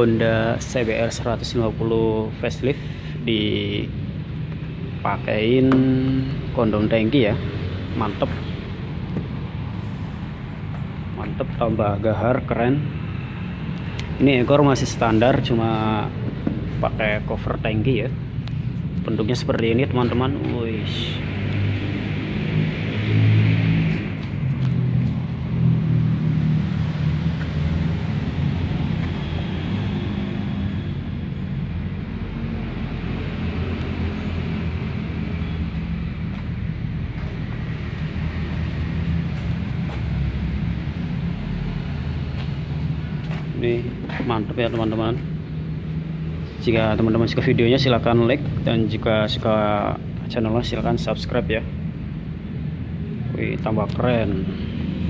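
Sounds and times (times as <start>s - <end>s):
low mechanical hum: 0.0s - 55.0s.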